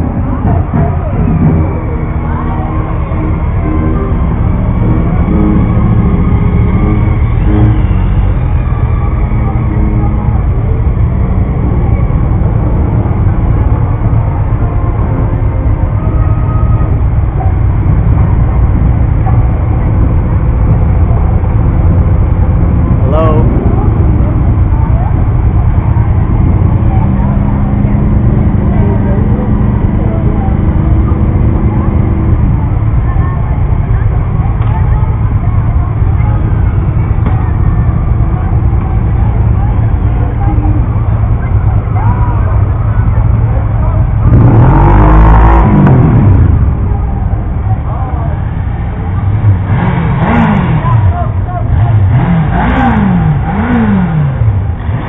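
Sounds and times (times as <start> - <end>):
motorcycle engines rumbling: 0.0 - 55.0
street music: 0.0 - 55.0
voices: 0.0 - 55.0.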